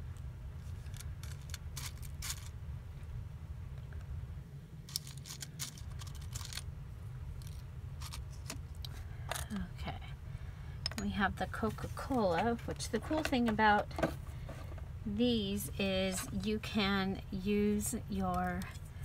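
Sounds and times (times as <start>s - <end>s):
steady low hum: 0.0s - 19.0s
craft pieces clicking and rustling: 0.6s - 2.5s, 4.9s - 6.7s, 7.4s - 9.6s.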